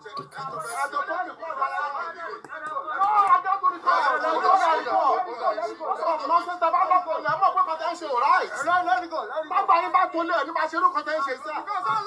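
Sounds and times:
people shouting in an argument: 0:00.9 - 0:08.4.

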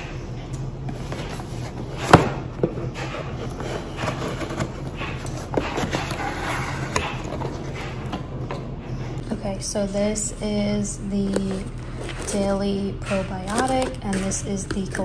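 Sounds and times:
clothes dryer humming: 0:00.0 - 0:15.0
cardboard scraping and rustling: 0:00.9 - 0:08.0
scissors cutting cardboard: 0:03.0 - 0:08.1.

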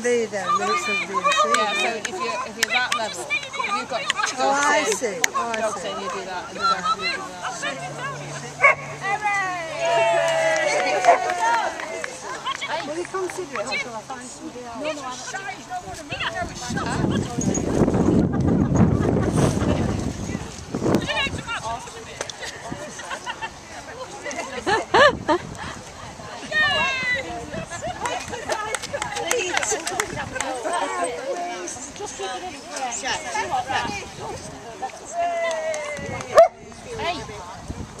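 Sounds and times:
wind buffeting microphone: 0:15.6 - 0:38.0.

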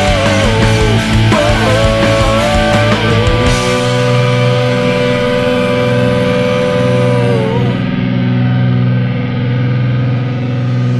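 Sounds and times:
distorted electric guitar chord ringing: 0:00.0 - 0:10.9.

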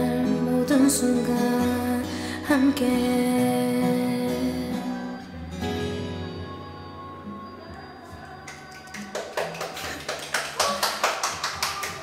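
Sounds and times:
karaoke backing track: 0:00.0 - 0:12.0
people clapping: 0:08.4 - 0:12.0.

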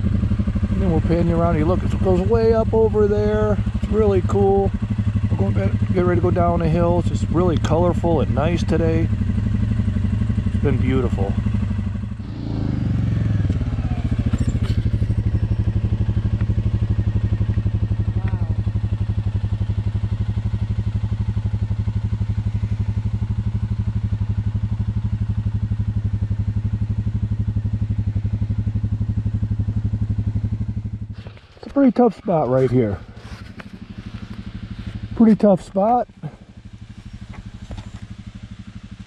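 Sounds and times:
atv engine idling: 0:00.0 - 0:39.0.

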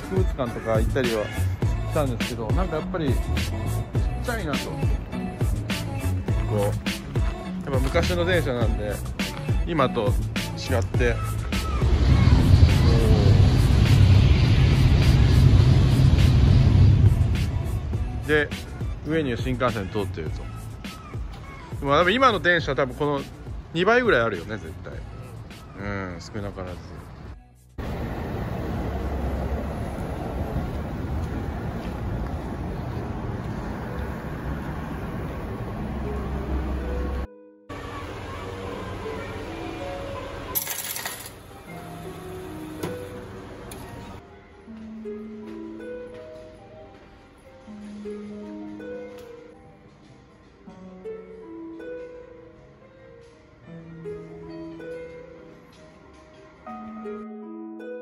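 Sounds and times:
music with steady beat: 0:00.0 - 0:11.8
background music: 0:00.0 - 0:28.8, 0:33.5 - 0:58.0
train passing with deep rumble: 0:11.9 - 0:18.3, 0:27.8 - 0:37.3
coins clattering into tray: 0:40.6 - 0:41.5.

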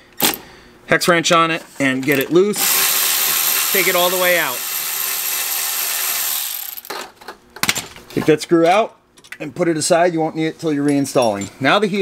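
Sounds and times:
impact driver whirring: 0:02.6 - 0:07.0.

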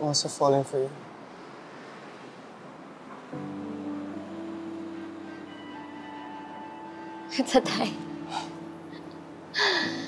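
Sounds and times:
faint breath: 0:09.5 - 0:10.0
person gasping: 0:09.6 - 0:10.0.

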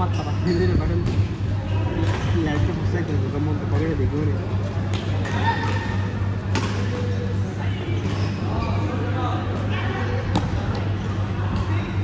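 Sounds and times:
players chattering: 0:00.0 - 0:12.0
steady low hum: 0:00.0 - 0:12.0
racket hitting shuttlecock: 0:06.5 - 0:07.0.

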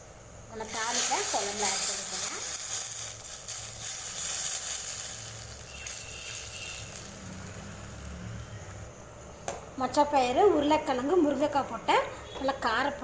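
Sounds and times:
hot oil sizzling: 0:00.5 - 0:08.4.

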